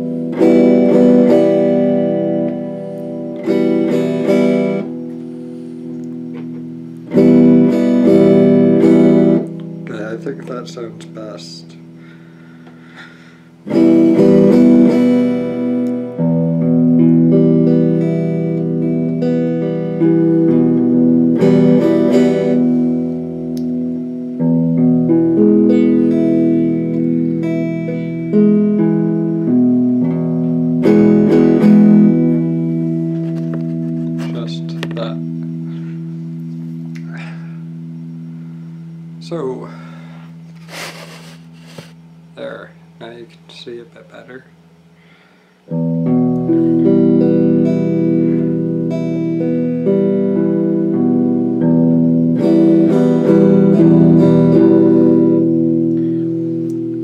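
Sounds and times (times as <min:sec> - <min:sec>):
soft picked guitar notes: 0:00.0 - 0:45.0, 0:45.6 - 0:57.0
electric guitar strumming chords: 0:00.0 - 0:57.0.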